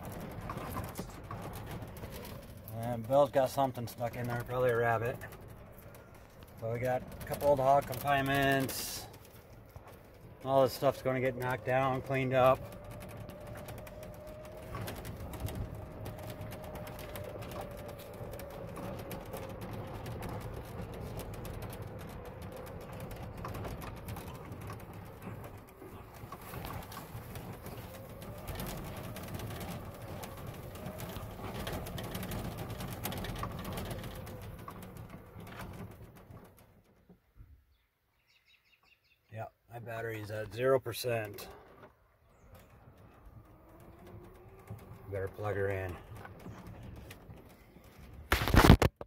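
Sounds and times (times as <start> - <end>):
cart rattling over rough ground: 0.0 - 37.7, 39.7 - 49.0.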